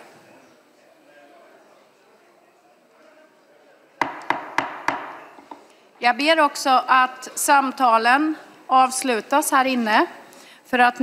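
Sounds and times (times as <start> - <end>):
faint murmur of conversation: 0.0 - 4.3
wooden gavel raps: 4.0 - 5.2.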